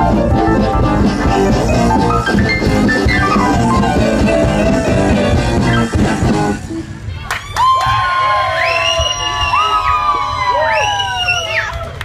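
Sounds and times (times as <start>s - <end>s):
rock band drums and guitars: 0.0s - 6.8s
audience cheering and whooping: 7.1s - 12.0s.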